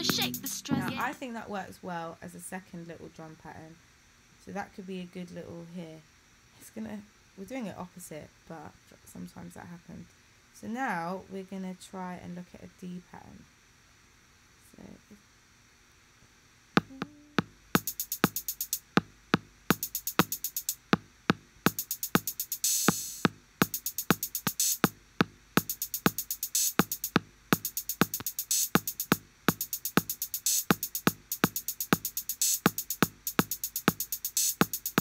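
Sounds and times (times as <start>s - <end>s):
drum machine pattern: 0.0s - 1.2s, 16.8s - 35.0s.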